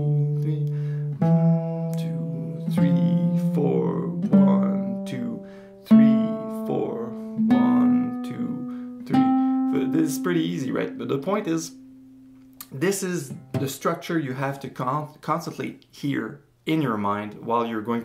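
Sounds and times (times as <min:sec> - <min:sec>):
classical guitar playing a scale: 0:00.0 - 0:13.8.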